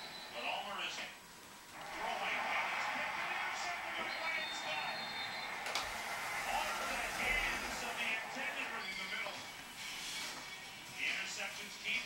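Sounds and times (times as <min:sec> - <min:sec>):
stadium crowd din on television: 0:00.0 - 0:12.0.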